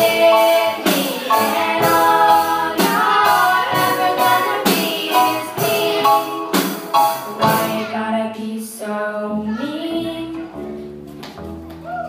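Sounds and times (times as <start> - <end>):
young voices singing: 0.0 - 10.5
live country band: 0.0 - 12.0.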